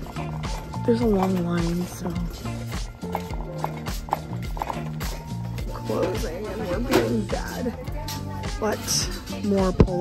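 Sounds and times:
music with steady beat and bass: 0:00.0 - 0:10.0.

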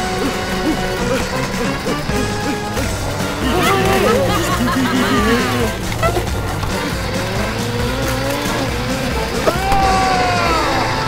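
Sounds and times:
background music: 0:00.0 - 0:11.0
cartoon car engine revving: 0:00.0 - 0:11.0
tyres screeching: 0:00.0 - 0:11.0.

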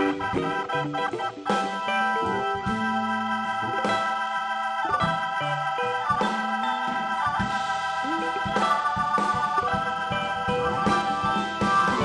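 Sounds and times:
bass line: 0:00.0 - 0:12.0
electric guitar: 0:00.0 - 0:12.0
organ keyboard chords: 0:00.0 - 0:12.0.

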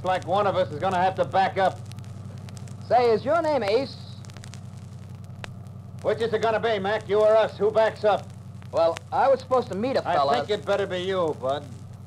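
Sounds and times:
faint hiss and crackle: 0:00.0 - 0:12.0
low hum: 0:00.0 - 0:12.0.

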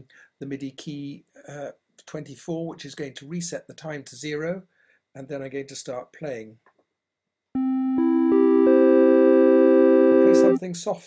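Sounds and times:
synth notes rising into chord: 0:07.6 - 0:10.6.

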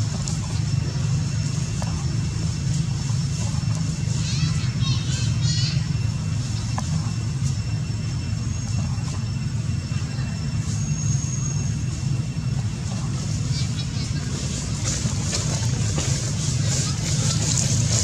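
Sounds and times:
low background rumble: 0:00.0 - 0:18.0.

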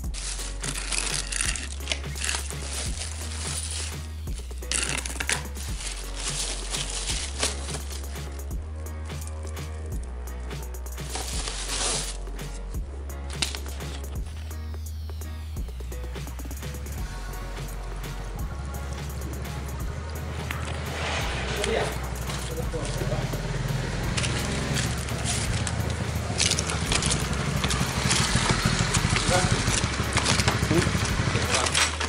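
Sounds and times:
plastic bag rustling: 0:00.0 - 0:08.5, 0:11.0 - 0:12.7, 0:13.3 - 0:14.6, 0:20.3 - 0:23.3, 0:24.1 - 0:32.0
background music with bass line: 0:00.0 - 0:32.0.

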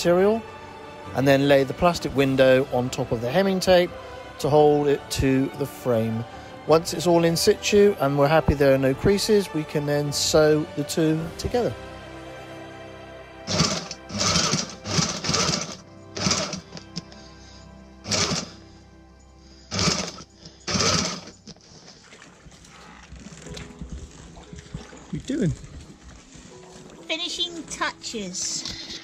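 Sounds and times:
background music: 0:00.0 - 0:29.0
sewing machine running: 0:13.5 - 0:16.8, 0:18.1 - 0:18.6, 0:19.7 - 0:21.3.

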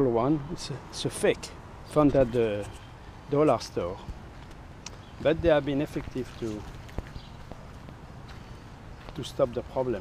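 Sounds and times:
footsteps on mulch path: 0:01.9 - 0:10.0.

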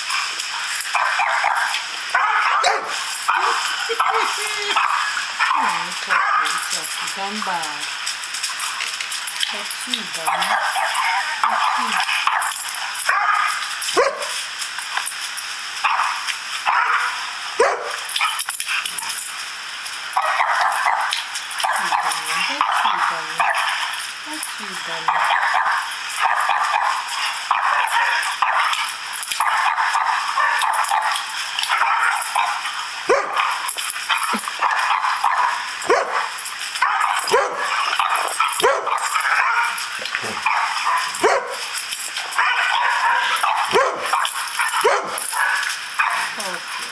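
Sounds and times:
recorded dog barking: 0:00.0 - 0:07.8, 0:09.5 - 0:14.4, 0:15.8 - 0:19.1, 0:20.1 - 0:46.9
dog barking: 0:00.9 - 0:06.9, 0:10.2 - 0:14.4, 0:15.8 - 0:18.4, 0:20.2 - 0:23.9, 0:25.0 - 0:33.6, 0:34.2 - 0:41.7, 0:42.3 - 0:46.6.

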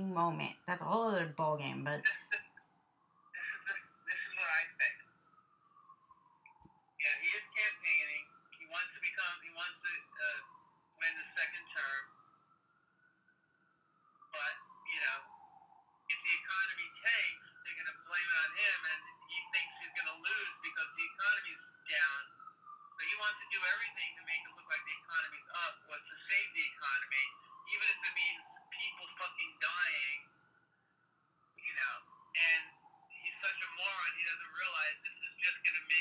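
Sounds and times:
person speaking: 0:00.0 - 0:02.4, 0:03.4 - 0:04.9
voice through a call line: 0:00.0 - 0:02.6, 0:03.4 - 0:05.0, 0:07.0 - 0:10.4, 0:11.0 - 0:12.1, 0:14.4 - 0:15.3, 0:16.1 - 0:22.3, 0:23.0 - 0:30.2, 0:31.6 - 0:36.0
faint steady tone: 0:00.0 - 0:36.0.

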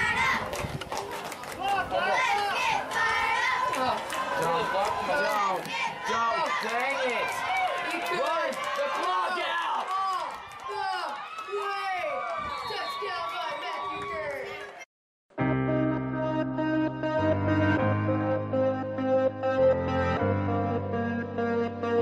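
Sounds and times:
spectators shouting and yelling: 0:00.0 - 0:14.8.

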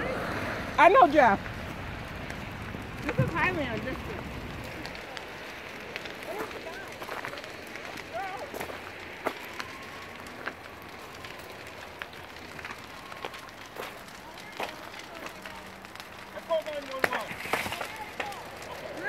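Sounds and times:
fire burning with rush: 0:00.0 - 0:19.0
fire popping and crackling: 0:00.0 - 0:19.0.

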